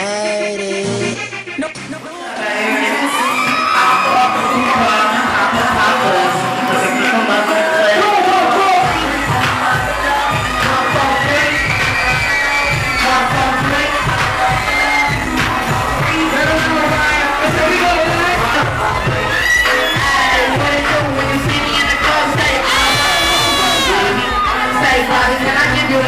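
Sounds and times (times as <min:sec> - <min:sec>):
crowd cheering and singing along: 0:00.0 - 0:26.0
live hip-hop music: 0:00.0 - 0:26.0.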